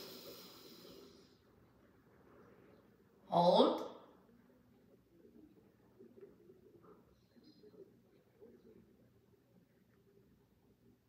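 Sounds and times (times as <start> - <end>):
faint inhale through nostril: 0.0 - 1.4.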